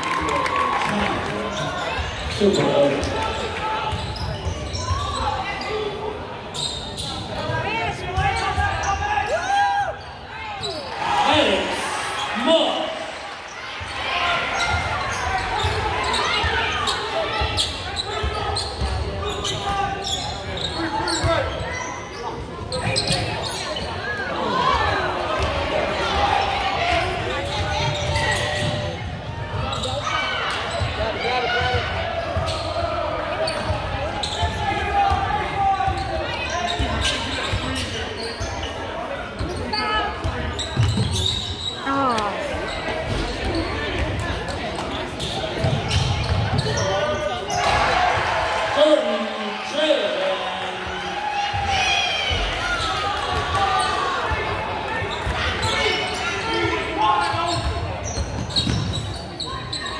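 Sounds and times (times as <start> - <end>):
crowd chatter and shouts: 0.0 - 59.9.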